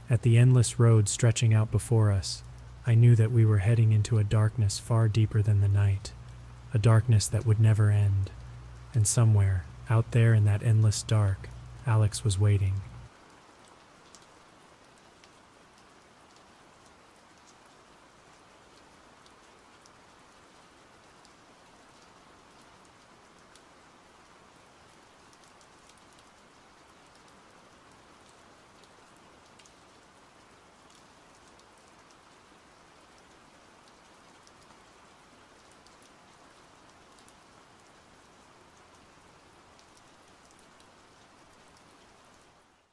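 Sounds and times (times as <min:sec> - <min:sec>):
faint steady rain: 0:00.0 - 0:42.9
drops ticking: 0:02.4 - 0:03.0, 0:05.4 - 0:13.1.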